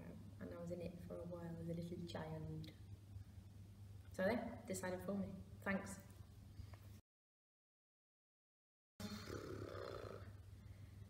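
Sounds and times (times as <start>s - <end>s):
low room hum: 0.0s - 7.0s, 9.0s - 11.0s.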